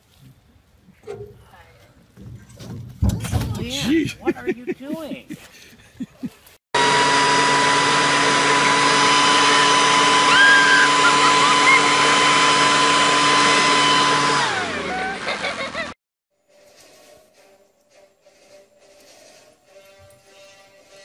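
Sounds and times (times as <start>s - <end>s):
leaf blower whine: 6.8s - 16.0s.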